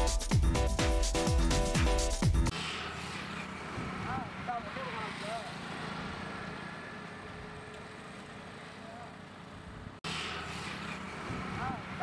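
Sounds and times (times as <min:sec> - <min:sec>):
highway traffic: 0:02.5 - 0:12.0.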